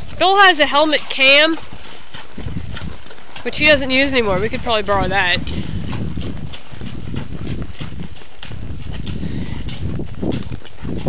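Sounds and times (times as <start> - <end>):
hoofbeats on muddy trail: 0.0 - 11.0.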